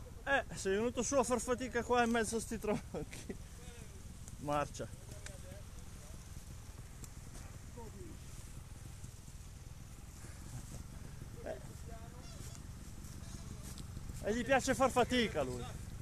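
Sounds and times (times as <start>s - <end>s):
motorcycle engine idling: 0.0s - 16.0s
footsteps in dry leaves: 10.2s - 16.0s.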